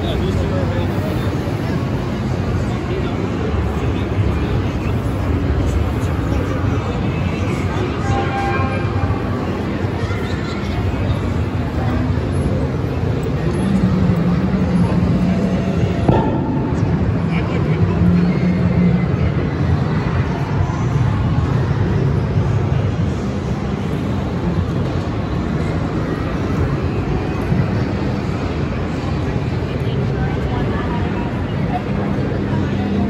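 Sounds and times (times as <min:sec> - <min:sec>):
indistinct crowd voices: 0:00.0 - 0:33.0
low constant drone: 0:00.0 - 0:33.0.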